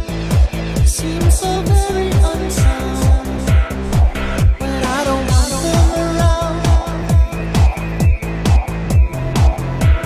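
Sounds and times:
eurodance club music: 0.0s - 10.0s.

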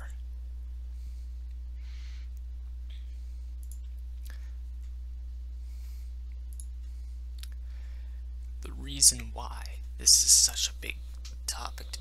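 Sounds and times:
steady low hum: 0.0s - 12.0s
computer mouse clicks: 3.6s - 4.3s.

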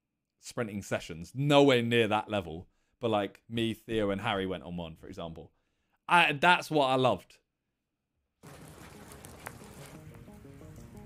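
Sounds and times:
steady rain falling: 8.4s - 11.0s.

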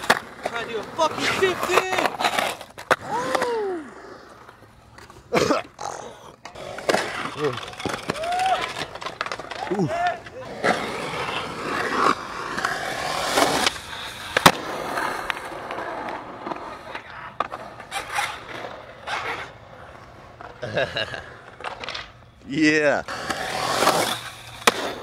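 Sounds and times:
skateboard clacks: 0.0s - 3.7s, 4.4s - 19.5s, 23.1s - 25.0s
skateboard wheels rolling on concrete: 0.0s - 25.0s.

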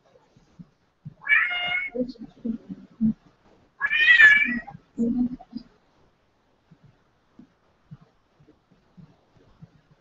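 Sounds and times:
cat meowing: 1.2s - 2.0s, 3.8s - 4.8s.

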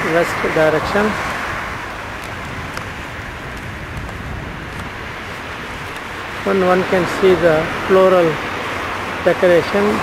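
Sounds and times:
low rumble: 0.7s - 7.9s.

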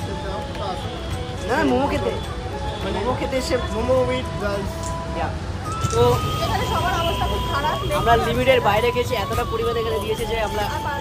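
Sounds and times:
busy street traffic rumble: 0.0s - 11.0s.

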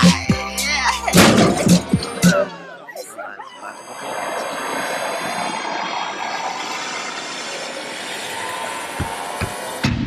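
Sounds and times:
rushing noise with falling whine: 3.7s - 10.0s.

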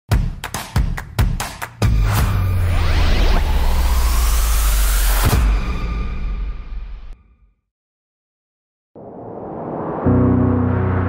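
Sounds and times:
deep bass drone: 9.4s - 11.0s.

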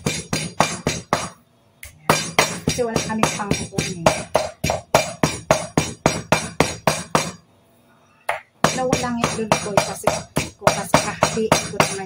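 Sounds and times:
meat pounded on wooden board: 0.0s - 1.4s, 2.1s - 7.4s, 8.3s - 12.0s.

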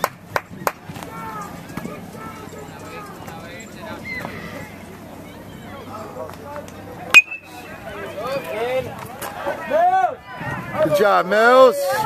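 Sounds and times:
spectators clapping in rhythm: 0.0s - 0.8s
faint crowd voices: 0.0s - 12.0s.

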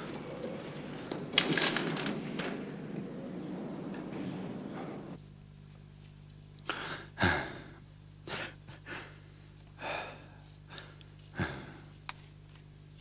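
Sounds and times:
man gasping breaths: 6.6s - 12.0s.

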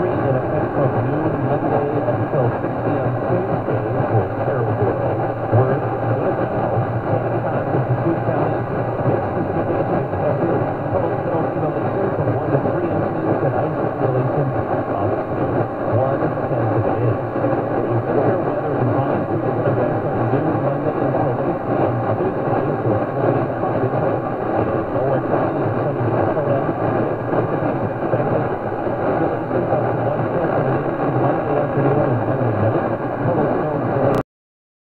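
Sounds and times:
radio static: 0.0s - 34.2s.

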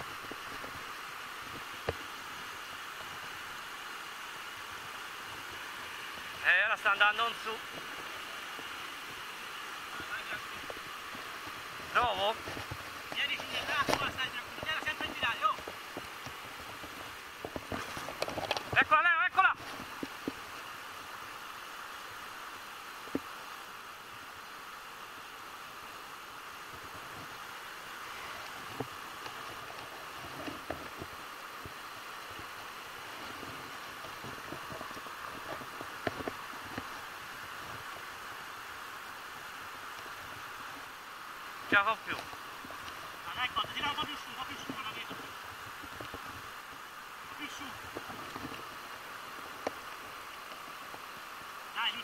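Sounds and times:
river water rushing over rapids: 0.0s - 52.0s.

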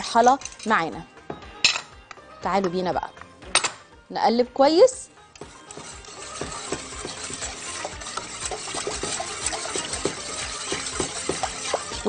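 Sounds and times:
whisk stirring milk: 5.4s - 12.0s
whisk wires clicking on pan: 5.4s - 12.0s.

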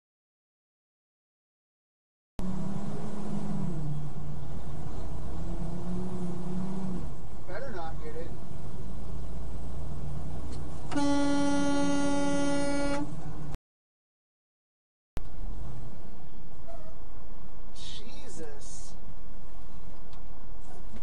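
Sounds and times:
truck engine and road drone: 2.4s - 13.6s, 15.2s - 21.0s
truck horn long tone: 10.9s - 13.2s.

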